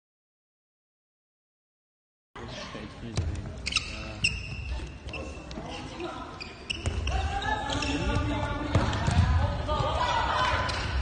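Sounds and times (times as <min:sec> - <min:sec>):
ball bouncing on hall floor: 0:03.1 - 0:11.0
shoe squeaks: 0:03.6 - 0:08.4
voices shouting in a hall: 0:04.7 - 0:11.0.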